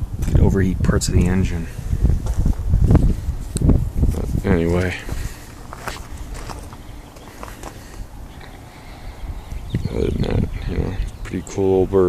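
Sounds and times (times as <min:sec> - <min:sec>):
low steady rumble: 0:00.0 - 0:12.0
footsteps on gravel: 0:02.0 - 0:08.6.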